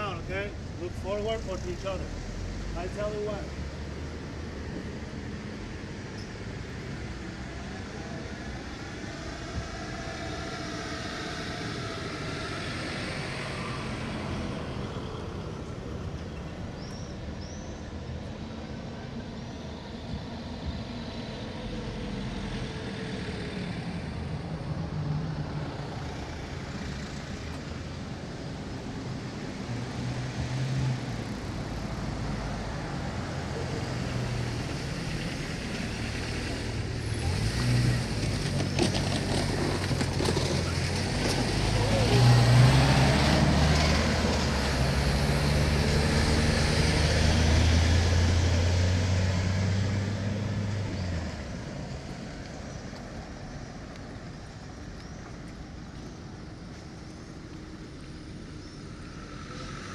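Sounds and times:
voices of passers-by: 0:00.0 - 0:46.1
road traffic rumble: 0:00.0 - 0:59.9.

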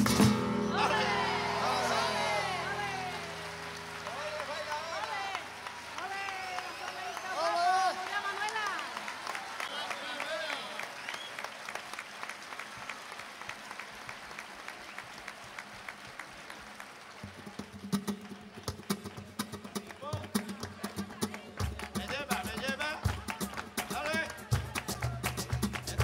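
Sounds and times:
flamenco hand clapping: 0:00.0 - 0:26.0.

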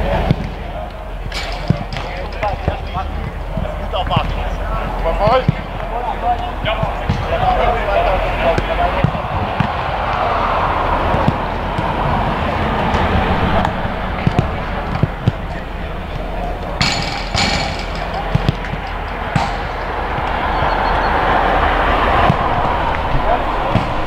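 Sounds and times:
players' voices: 0:00.0 - 0:24.0.

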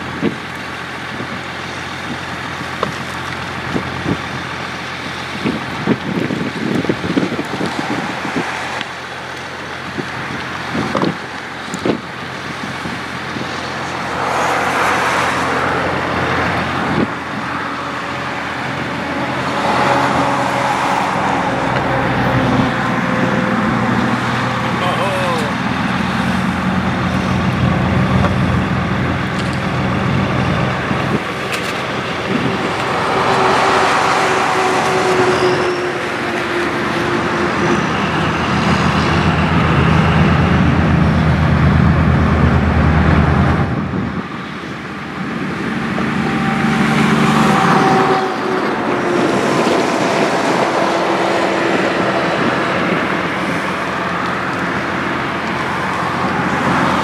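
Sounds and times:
traffic noise: 0:00.0 - 0:57.0
vehicle engine running: 0:00.0 - 0:57.0.

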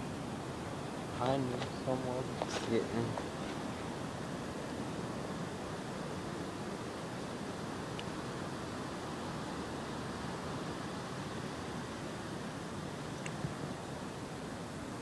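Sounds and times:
outdoor background hiss: 0:00.0 - 0:15.0
faint tick: 0:07.9 - 0:08.1.

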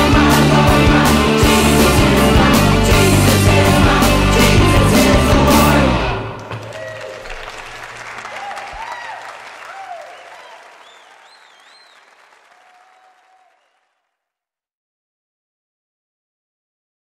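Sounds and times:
audience applause: 0:06.4 - 0:14.0
scattered cheers: 0:06.5 - 0:13.8.

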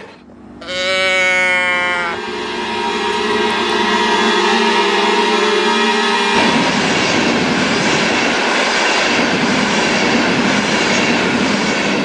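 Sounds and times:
bleat-can toy bleat: 0:00.6 - 0:02.2.

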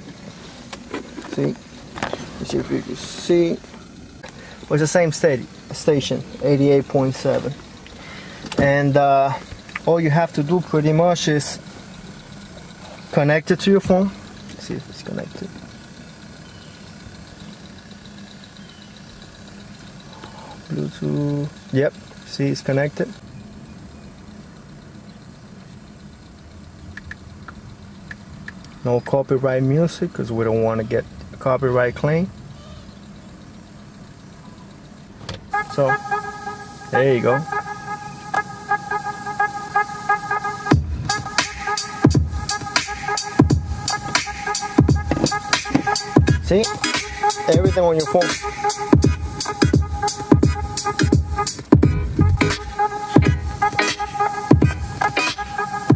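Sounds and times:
car engine idling: 0:00.0 - 0:55.9
faint fast ticking: 0:02.4 - 0:39.4
hi-hats: 0:33.0 - 0:55.9
synth tones: 0:35.5 - 0:55.9
deep falling kick drums: 0:40.7 - 0:41.4, 0:42.0 - 0:42.7, 0:43.4 - 0:46.5, 0:48.9 - 0:52.6, 0:53.2 - 0:53.6.

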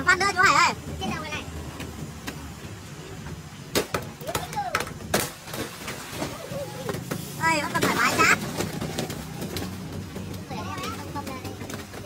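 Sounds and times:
sharp knocks of tarp ropes: 0:03.7 - 0:12.0.

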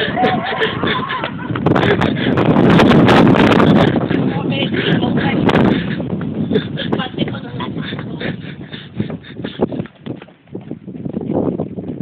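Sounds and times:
wind buffeting microphone: 0:00.0 - 0:12.0
microphone handling noise: 0:01.2 - 0:08.2, 0:08.9 - 0:12.0.

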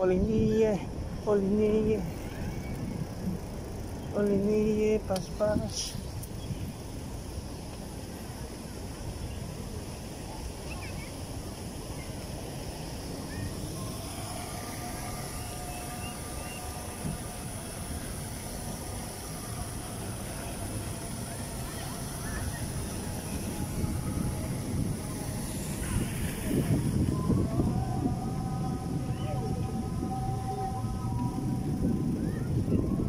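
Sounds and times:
wind on microphone: 0:00.0 - 0:33.0
bicycle tyres rolling on bricks: 0:02.0 - 0:04.5, 0:05.2 - 0:33.0.

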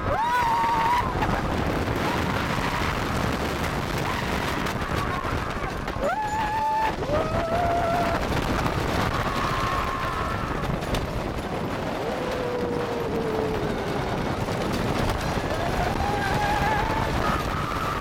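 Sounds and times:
riders screaming: 0:00.0 - 0:10.9, 0:11.8 - 0:18.0
roller coaster rumbling on wooden track: 0:00.0 - 0:18.0.

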